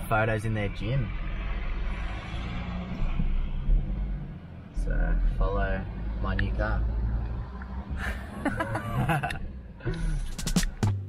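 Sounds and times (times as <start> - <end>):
engine and road noise rumble: 0.0 - 11.0.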